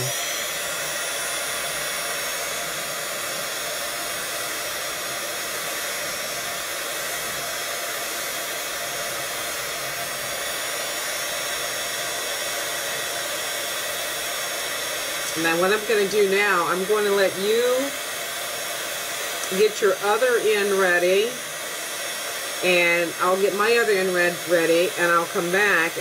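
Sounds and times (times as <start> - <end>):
heat gun fan blowing: 0.0 - 26.0.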